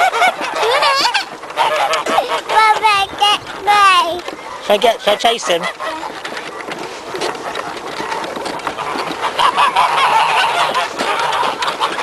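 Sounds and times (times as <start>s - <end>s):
geese honking: 0.0s - 12.0s.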